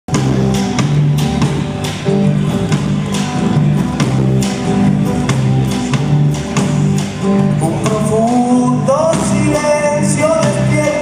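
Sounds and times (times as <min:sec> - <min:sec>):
drum kit and cymbals: 0:00.1 - 0:11.0
electric bass: 0:00.1 - 0:11.0
electric guitar: 0:00.1 - 0:11.0.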